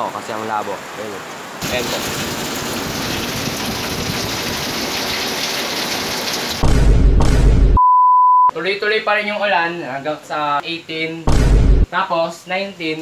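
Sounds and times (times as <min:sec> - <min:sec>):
heavy rain pouring: 0:00.0 - 0:07.0
deep rumbling noise: 0:06.6 - 0:07.8
high-pitched test-tone beep: 0:07.8 - 0:08.5.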